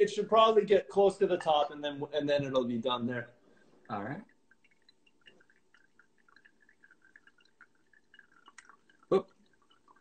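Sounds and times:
water dripping onto coffee: 0.0 - 10.0.

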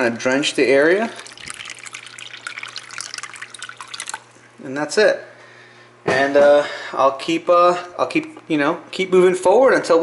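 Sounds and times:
water pouring into plastic tray: 1.0 - 4.4.

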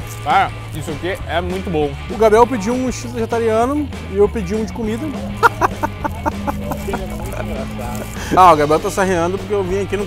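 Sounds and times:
background music: 0.0 - 10.0
laughter in short bursts: 5.4 - 8.3.

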